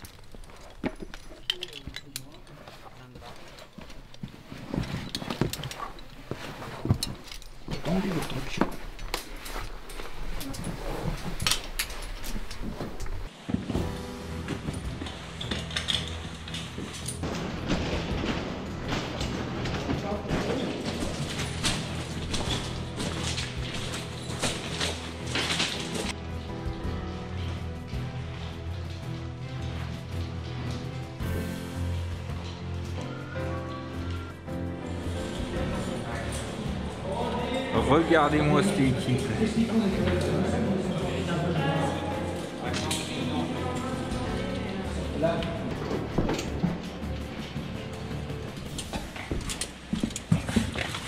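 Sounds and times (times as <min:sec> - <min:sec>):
background music with low notes: 0:03.5 - 0:51.0.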